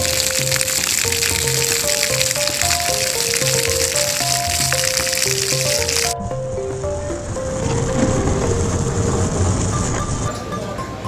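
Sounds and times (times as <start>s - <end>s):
skateboard wheels on rough asphalt: 3.9s - 10.4s.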